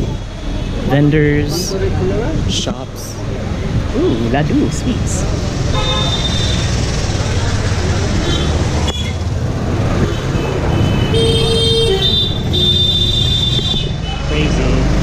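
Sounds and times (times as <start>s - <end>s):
busy street traffic: 0.0s - 15.0s
vehicle horns tooting: 5.6s - 6.8s, 10.1s - 14.6s.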